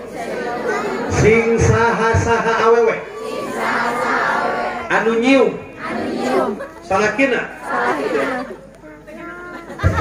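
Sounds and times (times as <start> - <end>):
audience calling out together: 0.0 - 8.8.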